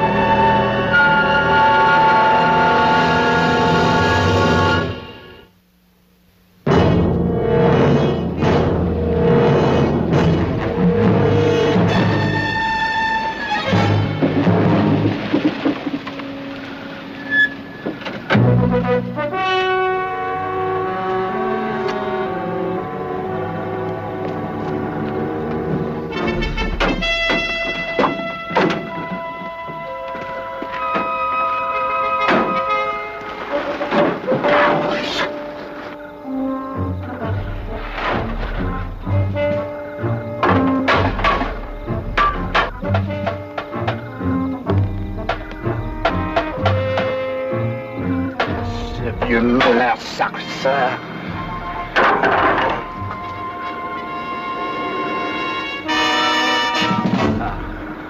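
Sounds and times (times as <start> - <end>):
orchestral dramatic score with brass: 0.0 - 5.6, 6.6 - 58.0.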